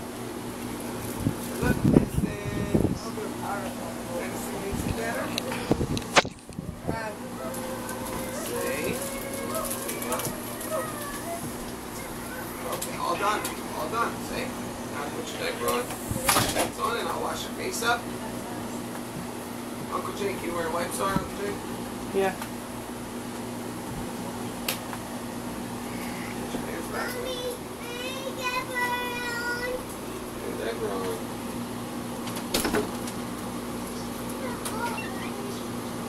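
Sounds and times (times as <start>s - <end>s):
steady low hum: 0.0s - 36.0s
small child's quiet voice: 7.5s - 13.6s, 25.8s - 26.4s, 27.0s - 29.8s, 34.0s - 35.8s.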